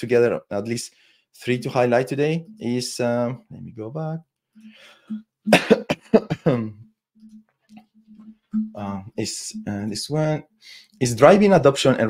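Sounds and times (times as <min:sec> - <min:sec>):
man coughing: 0:05.5 - 0:06.8.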